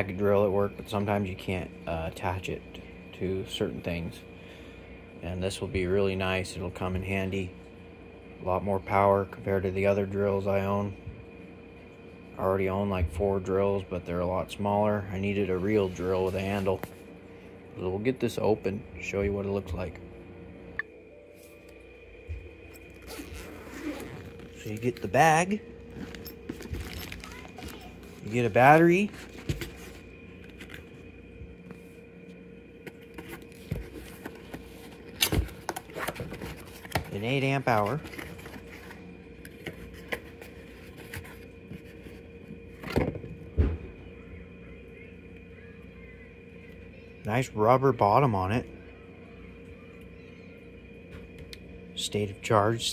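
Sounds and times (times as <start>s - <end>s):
faint steady hum: 0.0s - 52.9s
cardboard and plastic rustling: 25.9s - 31.0s, 32.9s - 43.7s.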